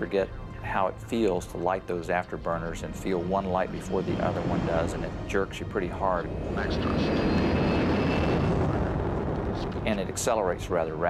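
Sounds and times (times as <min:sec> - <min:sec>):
faint high whine: 0:00.0 - 0:11.0
loud jet roar: 0:02.3 - 0:11.0.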